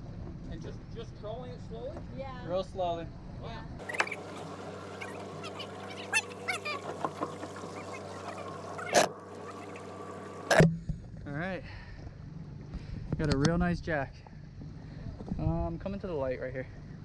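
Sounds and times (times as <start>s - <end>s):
outboard motor idling: 3.8s - 10.6s.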